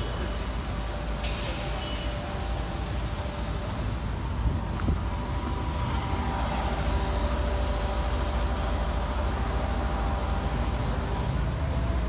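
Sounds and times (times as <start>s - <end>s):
faint steady tones: 0.0s - 12.0s
traffic rumble: 0.0s - 12.0s.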